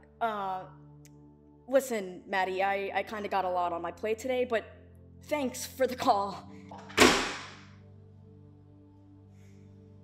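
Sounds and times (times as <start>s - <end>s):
low music drone: 0.0s - 10.0s.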